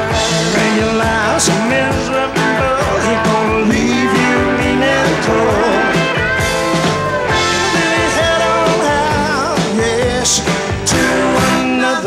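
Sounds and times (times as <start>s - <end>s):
electric lead guitar bending notes: 0.0s - 9.6s
rock band playing: 0.0s - 12.0s.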